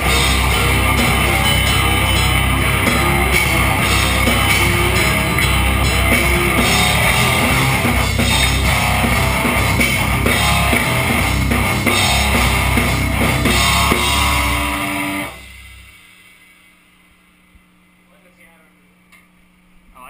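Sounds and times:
metal band playing heavy riff: 0.0 - 16.0.

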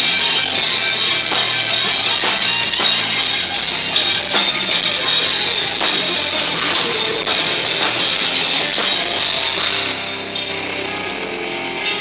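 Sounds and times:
cymbal hits: 0.0 - 11.0
electric guitar sustained notes: 0.0 - 12.0
heavy metal band playing live: 0.0 - 12.0.

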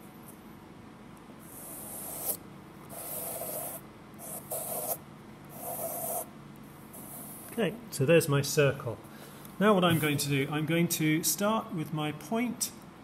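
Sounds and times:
pencil lead scratching paper: 1.4 - 6.3.

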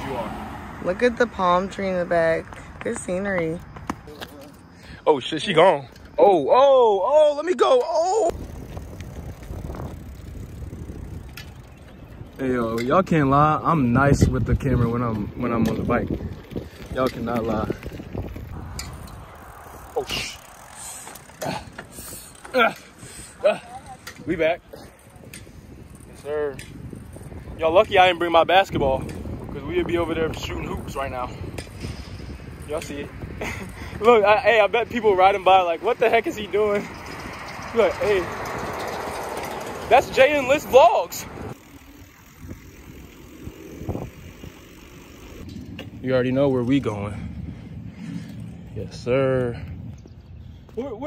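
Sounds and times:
bicycle tyres rolling on asphalt: 0.0 - 51.0.

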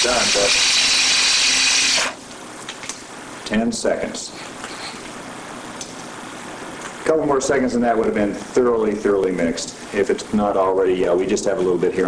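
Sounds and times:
electric drill whirring: 0.0 - 2.2.

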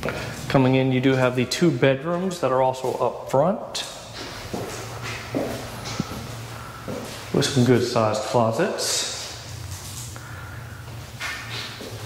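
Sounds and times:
boot footsteps on concrete: 4.1 - 7.2.

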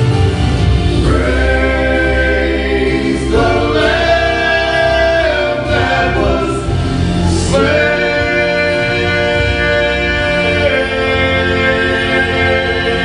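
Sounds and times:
low bass accompaniment: 0.0 - 13.0
male vocal group singing in harmony: 0.8 - 13.0.

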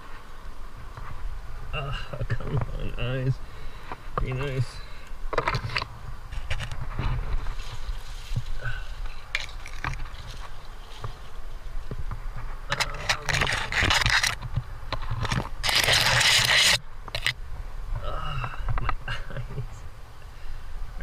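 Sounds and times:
rustling leafy branches: 0.0 - 21.0
scraping against rock: 5.3 - 17.4.

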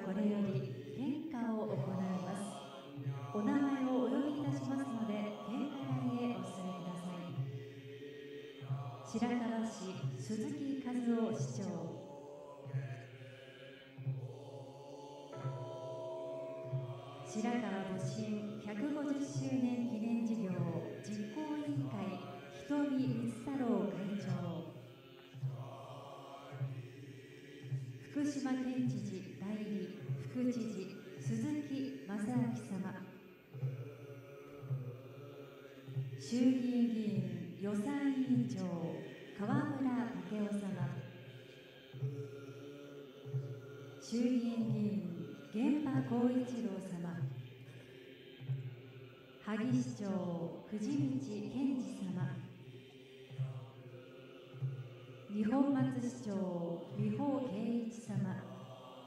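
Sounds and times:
group chanting in unison: 0.0 - 59.0.

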